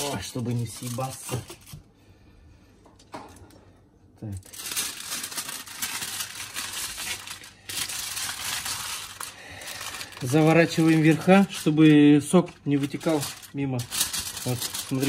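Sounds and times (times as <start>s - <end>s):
kitchen foil crinkling: 0.0s - 1.8s, 4.2s - 15.0s.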